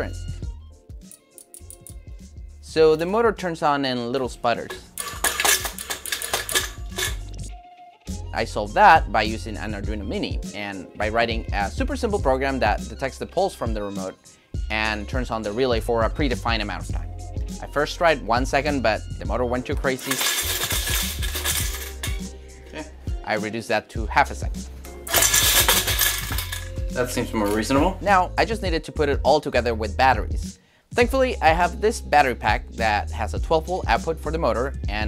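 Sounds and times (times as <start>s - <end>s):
pennies rattling in a can: 4.7s - 7.3s, 19.9s - 22.3s, 25.1s - 26.8s.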